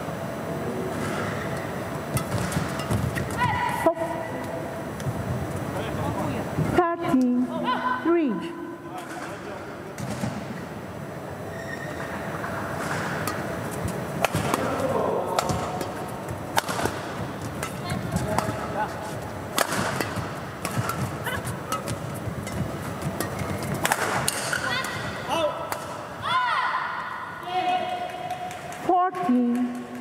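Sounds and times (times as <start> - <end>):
murmur of indoor hall: 0.0 - 30.0
rackets striking shuttlecock: 1.6 - 3.4, 12.8 - 14.7, 15.3 - 18.8, 19.5 - 26.1.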